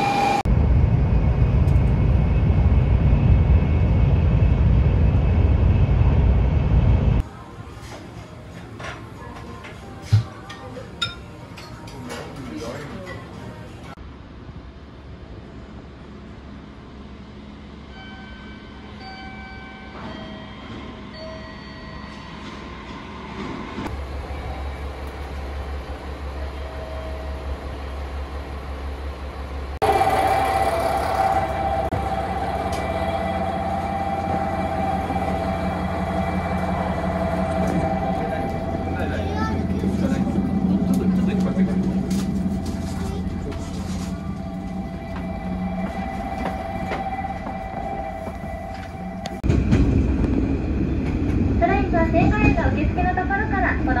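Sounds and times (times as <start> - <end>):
diesel railcar humming: 0.0 - 12.1, 12.7 - 54.0
passengers' voices: 7.2 - 14.0, 29.8 - 54.0.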